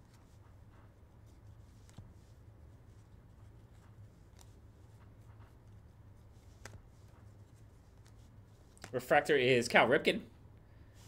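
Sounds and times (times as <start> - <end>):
trading cards being flipped: 0.0 - 9.0
low steady hum: 0.0 - 11.0
man's voice: 8.9 - 10.3.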